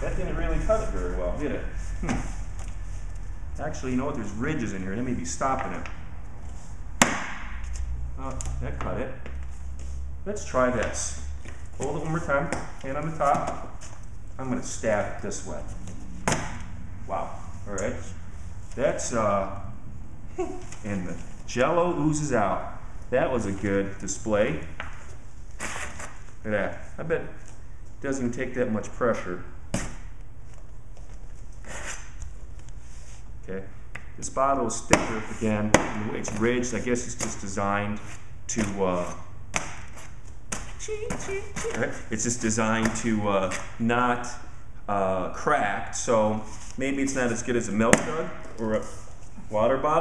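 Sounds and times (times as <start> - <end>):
low steady hum: 0.0 - 50.0.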